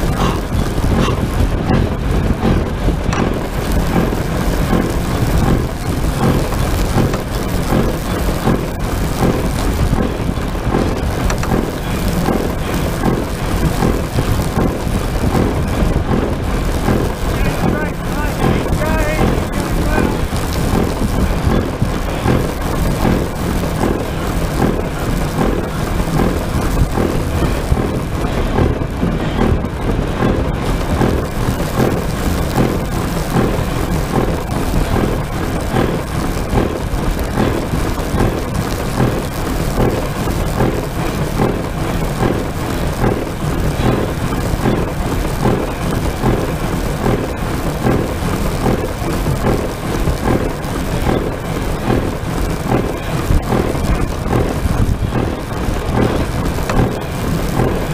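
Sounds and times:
aircraft running noise: 0:00.0 - 0:57.9
wind buffeting microphone: 0:00.0 - 0:57.9.

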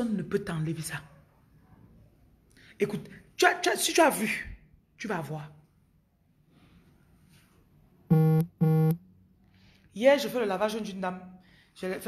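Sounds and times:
low buzzy electronic beeps: 0:08.1 - 0:09.0.

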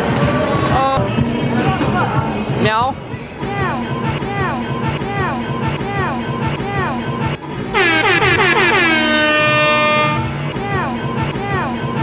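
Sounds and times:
background music: 0:00.0 - 0:12.0
loud air horn sound effect: 0:07.7 - 0:10.4.

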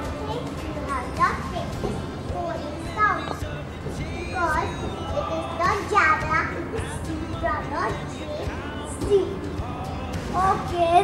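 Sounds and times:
children speaking: 0:00.0 - 0:11.0.

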